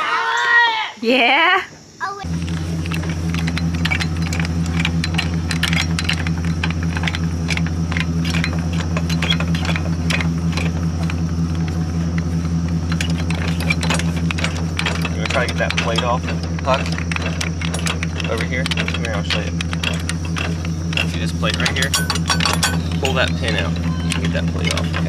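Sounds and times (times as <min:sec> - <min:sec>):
vehicle engine idling: 0:02.1 - 0:25.0
metallic clinks and rattles: 0:02.6 - 0:25.0.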